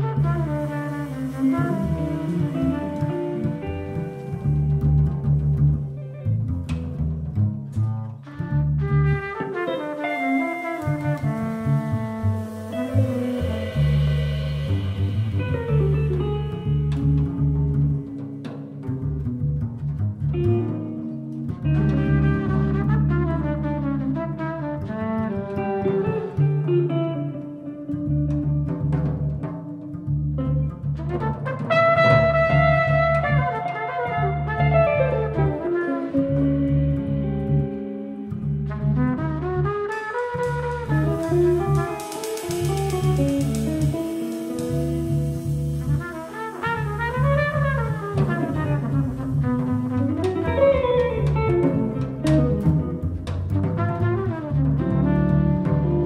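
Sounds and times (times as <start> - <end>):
deep bass line: 0.0 - 9.4, 10.7 - 18.2, 18.8 - 25.5, 34.2 - 56.0
jazz band playing: 0.0 - 56.0.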